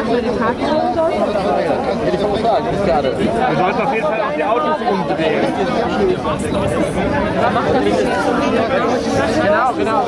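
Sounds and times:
crowd of people talking: 0:00.0 - 0:10.0.

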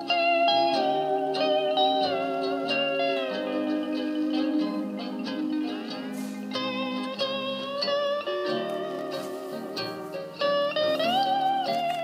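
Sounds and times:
steel guitar music from a record: 0:00.0 - 0:12.0.

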